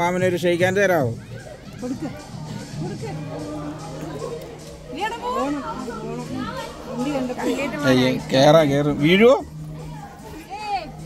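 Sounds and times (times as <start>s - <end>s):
voices nearby: 0.0s - 11.0s.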